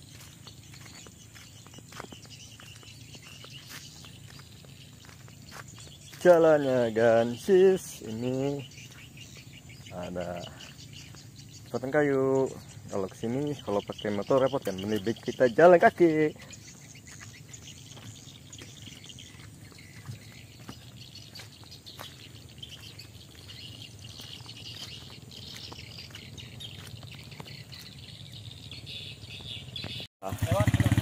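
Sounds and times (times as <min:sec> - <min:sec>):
footsteps on muddy dirt road: 0:00.0 - 0:29.9
birds chirping: 0:00.0 - 0:31.0
motorcycle engine running: 0:00.1 - 0:07.6, 0:08.2 - 0:31.0.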